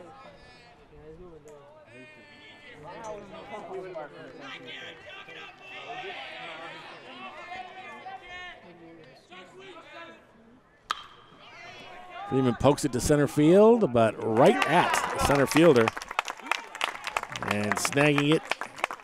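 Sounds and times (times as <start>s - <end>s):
crowd chattering: 0.0s - 19.0s
bat hitting baseball: 10.9s - 11.5s.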